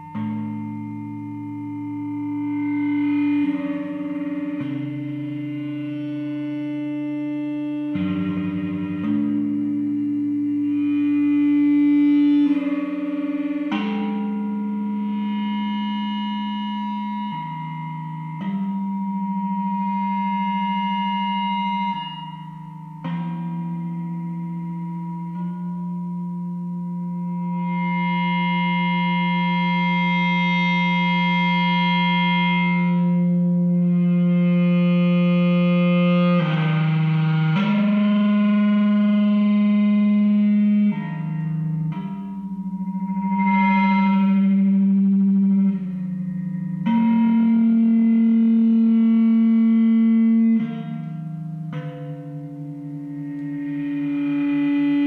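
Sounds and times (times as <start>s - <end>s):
droning electric guitar tones: 0.0s - 55.0s.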